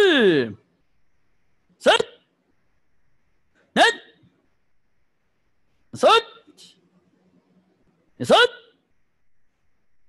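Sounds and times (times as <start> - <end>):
man calling out a count: 0.0 - 0.6, 1.8 - 2.2, 3.7 - 4.2, 6.0 - 6.8, 8.2 - 8.8.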